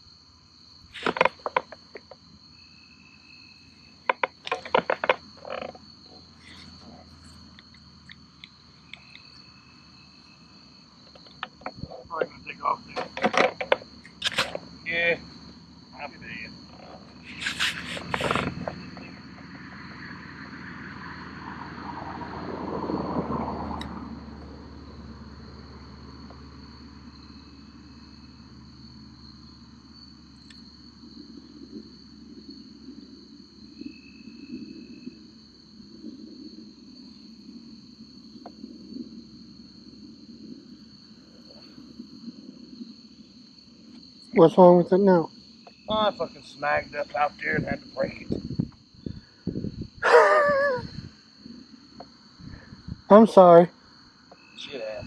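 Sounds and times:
crickets chirring: 0:00.0 - 0:55.0
sharp clicks and knocks: 0:01.0 - 0:02.2, 0:04.1 - 0:05.8, 0:12.9 - 0:14.6.

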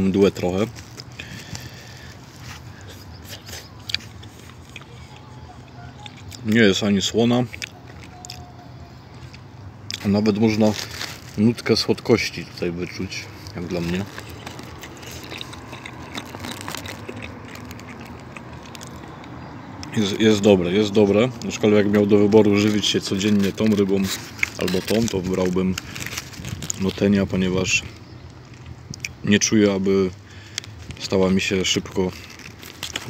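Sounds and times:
low background hum: 0:00.0 - 0:33.0
faint chewing: 0:00.6 - 0:20.0, 0:21.4 - 0:27.0, 0:27.8 - 0:29.2, 0:30.3 - 0:31.0, 0:31.7 - 0:33.0
wet mouth clicks: 0:14.3 - 0:19.3.

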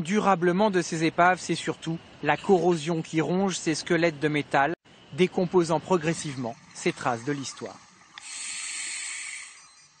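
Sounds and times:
diving regulator hissing underwater: 0:07.1 - 0:10.0.

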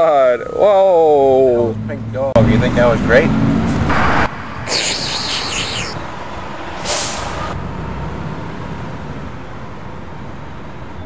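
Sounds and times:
traffic rumble: 0:00.0 - 0:11.0
loud hiss: 0:06.8 - 0:07.5.

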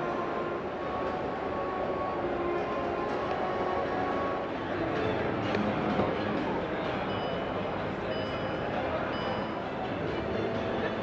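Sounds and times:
crowd noise: 0:00.0 - 0:11.0
faint background music: 0:00.0 - 0:11.0.

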